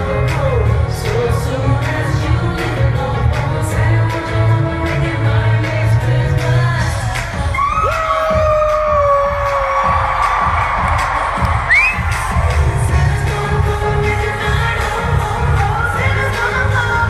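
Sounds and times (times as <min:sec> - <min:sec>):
live pop band: 0:00.0 - 0:17.0.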